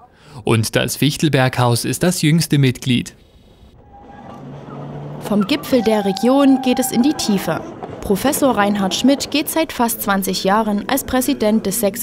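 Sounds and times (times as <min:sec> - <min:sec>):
mine train humming: 0:03.6 - 0:12.0.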